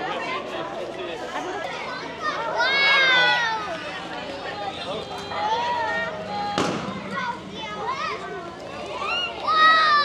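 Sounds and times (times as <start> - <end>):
children calling out: 1.9 - 3.8, 4.9 - 10.0.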